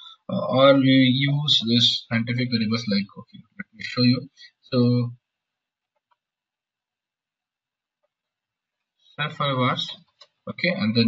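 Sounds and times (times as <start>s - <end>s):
man speaking: 0.0s - 5.1s, 9.2s - 11.0s.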